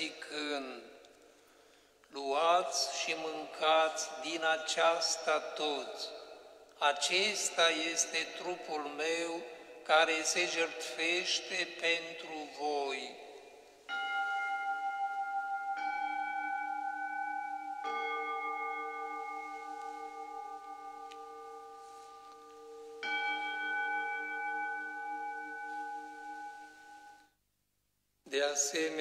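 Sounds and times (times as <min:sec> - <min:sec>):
altar bells ringing: 0:02.3 - 0:27.2.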